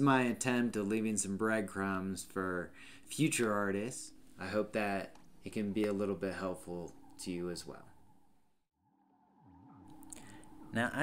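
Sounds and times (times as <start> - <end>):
sweeping electronic tones: 2.5 - 11.0.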